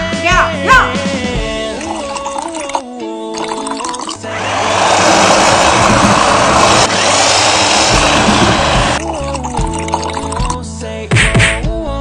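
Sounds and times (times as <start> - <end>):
background music: 0.0 - 12.0
electric blender whirring: 4.1 - 9.1.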